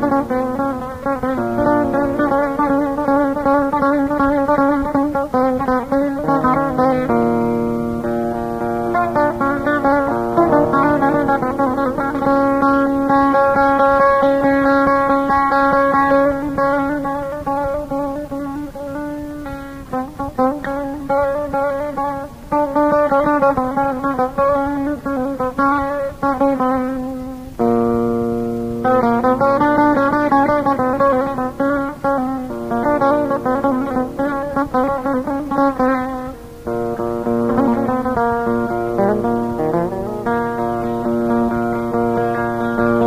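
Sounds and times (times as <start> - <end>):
plucked string instrument melody: 0.0 - 43.0.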